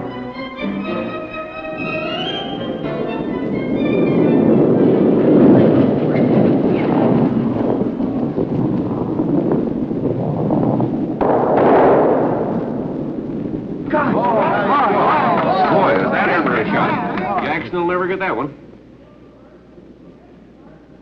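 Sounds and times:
orchestral film music: 0:00.0 - 0:04.4.

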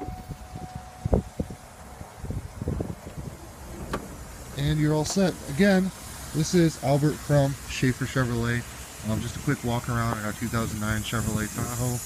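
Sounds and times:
power liftgate motor tone: 0:00.0 - 0:02.1.

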